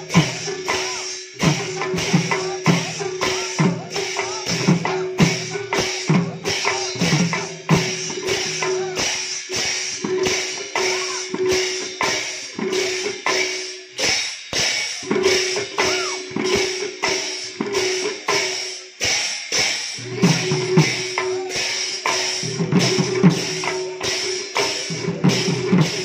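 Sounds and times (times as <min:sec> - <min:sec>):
barrel drums in fast rhythm: 0:00.0 - 0:26.0.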